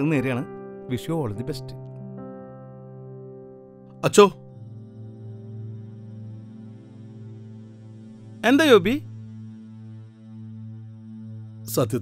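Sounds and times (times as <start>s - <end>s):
steady low drone: 4.4s - 12.0s.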